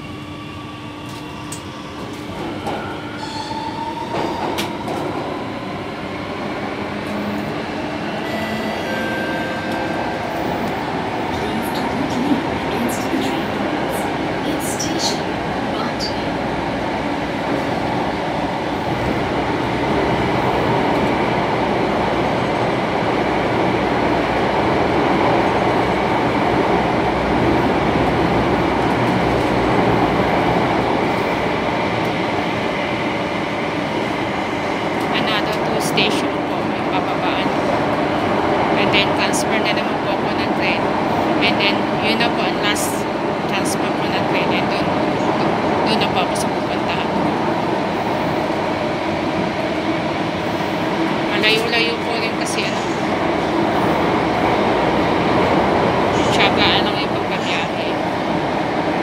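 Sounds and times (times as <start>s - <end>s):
metro train running noise: 0.0s - 59.0s.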